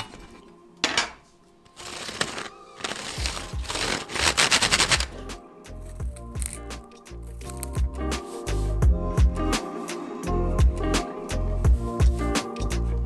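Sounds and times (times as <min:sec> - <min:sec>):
background music with bass beat: 0:04.9 - 0:13.0.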